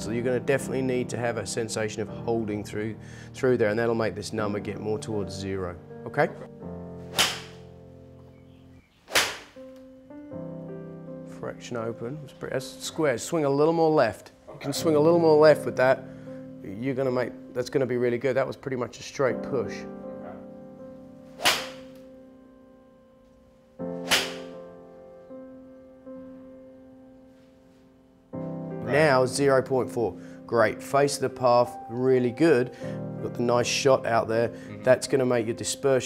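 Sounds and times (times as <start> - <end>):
soft piano chords: 0.0 - 8.9, 9.6 - 36.0
soft background music: 0.0 - 36.0
golf club striking ball: 7.0 - 7.8, 9.1 - 9.9, 21.4 - 22.0, 24.0 - 24.6.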